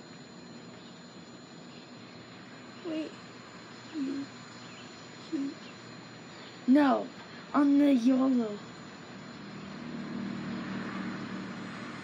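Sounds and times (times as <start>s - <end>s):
vehicle engine hum passing: 9.2s - 12.0s.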